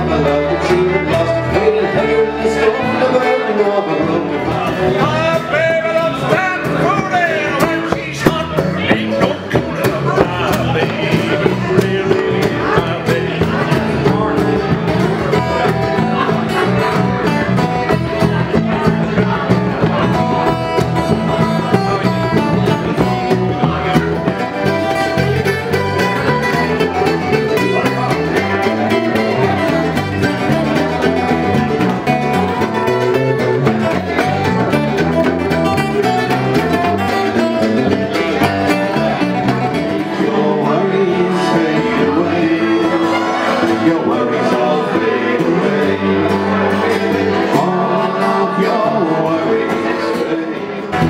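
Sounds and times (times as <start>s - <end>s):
fiddle: 0.0s - 51.0s
man singing: 0.0s - 51.0s
plucked strings: 0.0s - 51.0s
strummed acoustic guitar: 0.0s - 51.0s
frame drum: 6.7s - 39.9s.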